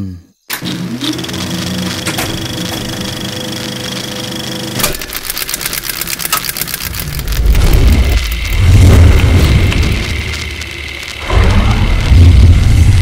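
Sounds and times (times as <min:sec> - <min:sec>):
projector motor hum: 0:00.5 - 0:13.0
fast rattling clatter: 0:04.8 - 0:08.5
deep rumble: 0:06.8 - 0:13.0.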